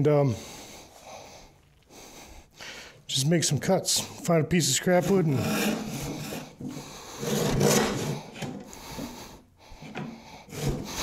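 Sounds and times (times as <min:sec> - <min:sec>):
hand saw cutting wood: 0:04.7 - 0:11.0.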